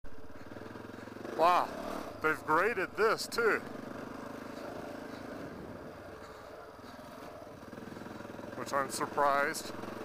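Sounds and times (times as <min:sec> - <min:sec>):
dirt bike engine running: 0:00.1 - 0:10.0.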